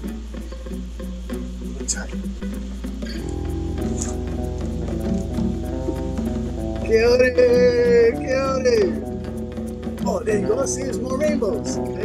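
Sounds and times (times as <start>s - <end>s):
recorded song with steady beat: 0.0s - 12.0s.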